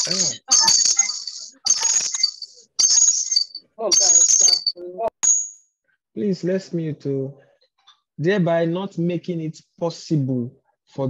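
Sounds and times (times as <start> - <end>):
person's voice: 0.0 - 2.1, 3.8 - 5.1, 6.2 - 7.4, 8.2 - 10.5
jingling rattling bursts: 0.0 - 5.6.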